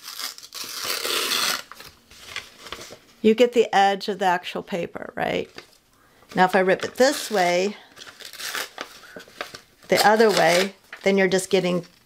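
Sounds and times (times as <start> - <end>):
paper tearing: 0.0 - 3.0, 6.8 - 10.8.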